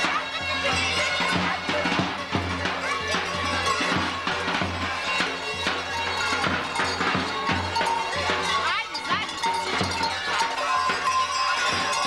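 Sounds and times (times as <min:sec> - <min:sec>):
large metal bells clanging: 0:00.0 - 0:12.0
traditional music: 0:00.0 - 0:12.0
voices: 0:00.0 - 0:12.0.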